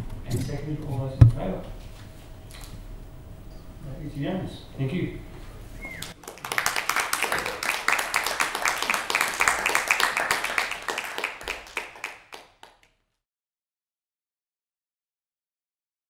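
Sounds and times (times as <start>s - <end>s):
roomful of people clapping: 6.0s - 13.1s.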